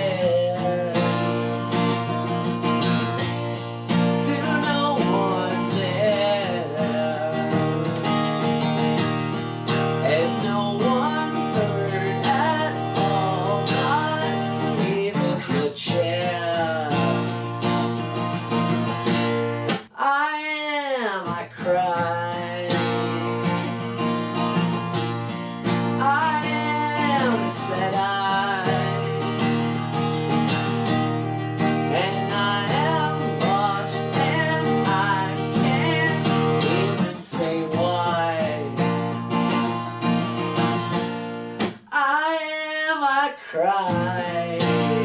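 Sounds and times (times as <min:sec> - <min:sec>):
man singing: 0:00.0 - 0:03.2, 0:03.9 - 0:09.1, 0:09.7 - 0:17.8, 0:19.9 - 0:24.1, 0:25.6 - 0:39.6, 0:41.8 - 0:45.0
acoustic guitar strummed: 0:00.0 - 0:45.0.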